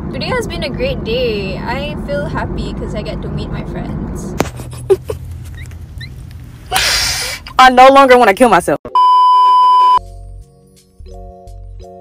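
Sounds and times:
high test-tone beep: 8.9 - 10.0.

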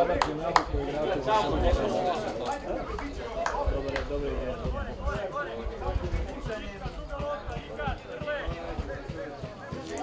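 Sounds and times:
open-air background noise: 0.0 - 10.0
people talking indistinctly: 0.0 - 10.0.

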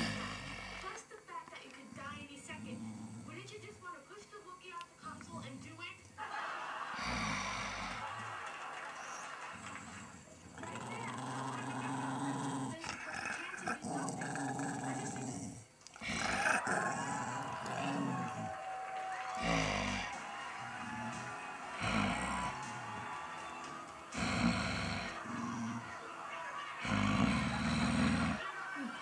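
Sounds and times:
dog growling: 0.0 - 1.0, 1.9 - 3.8, 6.8 - 29.0.

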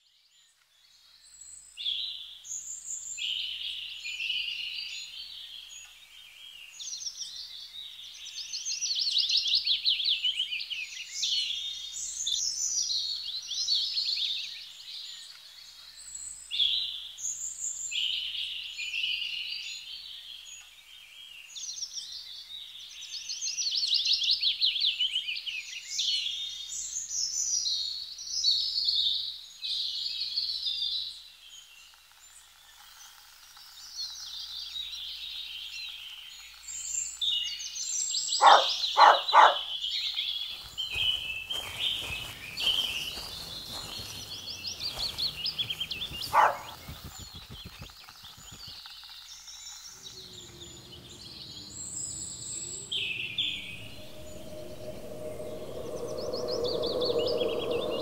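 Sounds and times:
songbirds chirping and trilling: 0.0 - 58.0.

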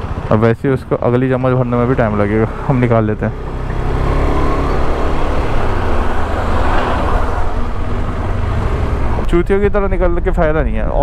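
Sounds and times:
motorcycle engine at low speed: 0.0 - 10.4
truck and road noise: 0.0 - 11.0.

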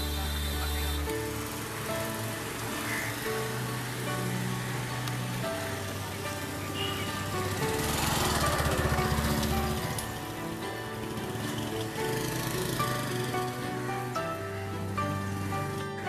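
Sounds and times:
background music of held notes: 0.0 - 16.0.

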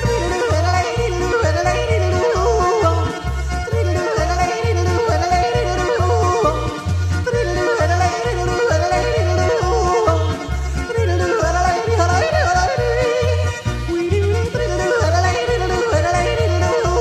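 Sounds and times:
folk-pop backing music: 0.0 - 17.0
person yodeling: 0.0 - 17.0.

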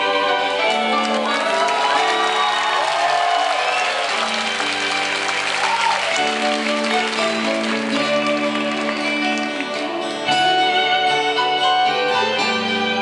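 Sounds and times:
live acoustic band playing: 0.0 - 13.0
audience cheering and clapping: 0.5 - 10.1.

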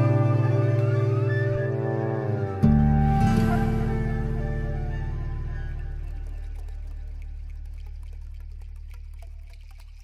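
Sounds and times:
calm instrumental relaxation music: 0.0 - 9.9.

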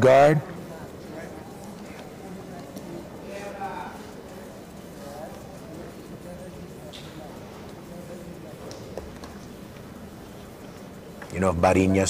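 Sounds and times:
indistinct background voices: 0.0 - 12.0.

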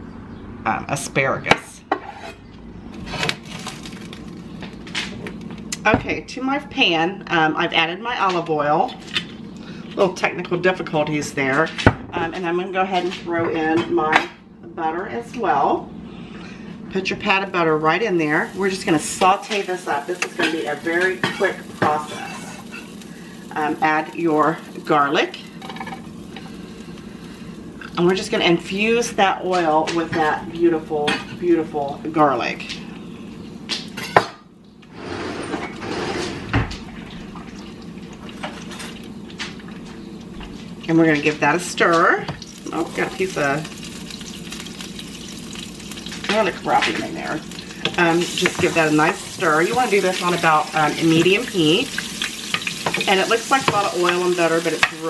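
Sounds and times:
butter and oil sizzling in a pan: 17.0 - 33.6, 41.3 - 55.0.

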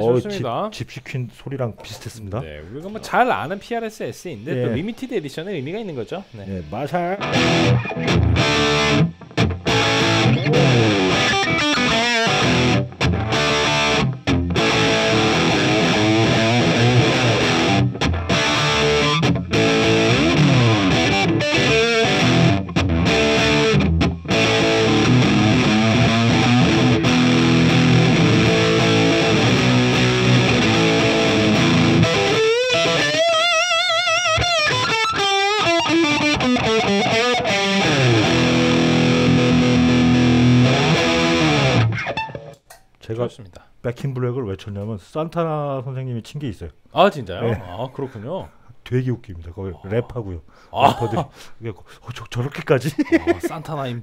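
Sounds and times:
guitar lead note with vibrato: 7.2 - 12.8
distorted electric guitar riff: 7.2 - 42.6.

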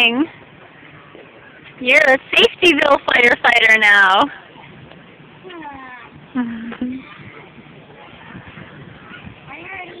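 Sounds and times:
faint indistinct voices: 4.2 - 10.0.

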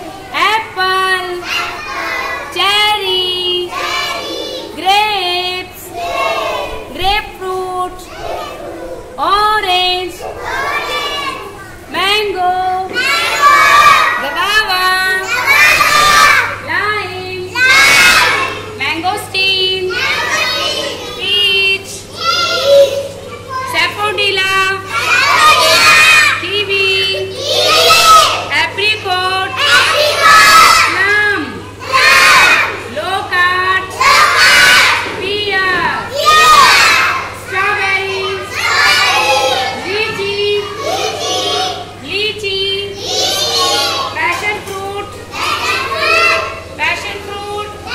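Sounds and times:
young children speaking in chorus: 1.3 - 4.8, 5.9 - 7.0, 7.9 - 9.2, 10.1 - 11.9, 12.8 - 14.3, 15.1 - 16.7, 17.4 - 18.8, 19.8 - 21.3, 22.0 - 23.8, 24.8 - 26.4, 27.1 - 28.5, 29.5 - 32.9, 33.8 - 42.0, 42.8 - 46.8.

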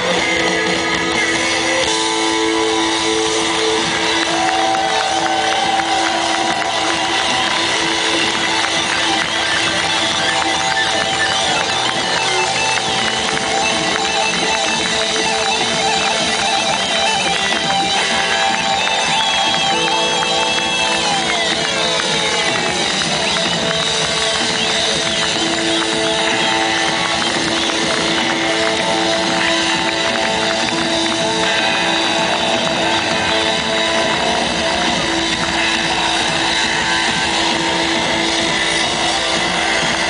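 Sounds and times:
pop-rock band playing: 0.0 - 40.0
sustained keyboard notes: 0.0 - 40.0.

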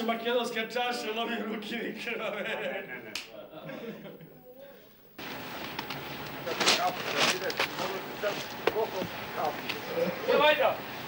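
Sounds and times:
steady hiss: 4.7 - 11.0.

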